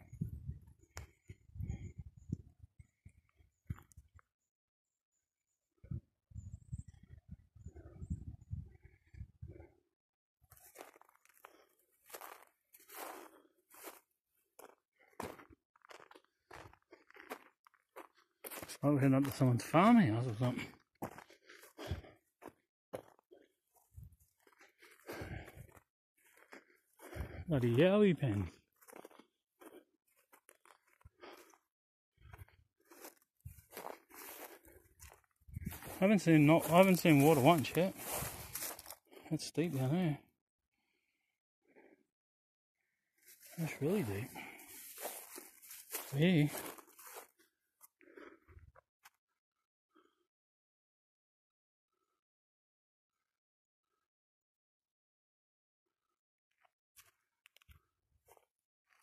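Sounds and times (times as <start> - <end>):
footsteps crunching dry grass: 10.5 - 31.6, 32.3 - 40.1, 43.2 - 48.4.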